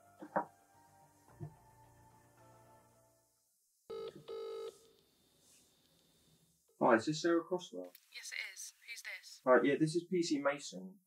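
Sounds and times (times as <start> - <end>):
telephone ringing: 3.9 - 4.8.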